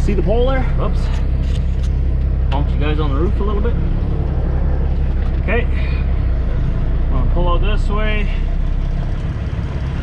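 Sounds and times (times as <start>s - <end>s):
truck diesel engine rumbling: 0.0s - 10.0s.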